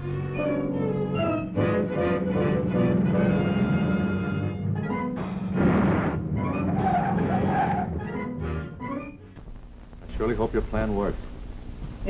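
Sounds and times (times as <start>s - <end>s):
car engine: 5.2s - 8.4s
tyres squealing: 5.6s - 8.5s.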